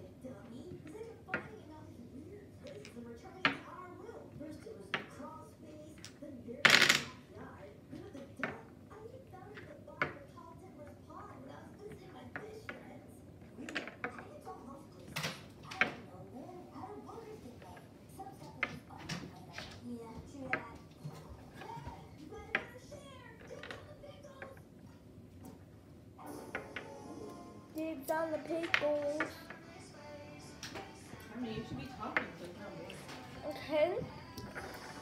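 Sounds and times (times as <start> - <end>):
dominoes clattering: 6.0 - 7.2.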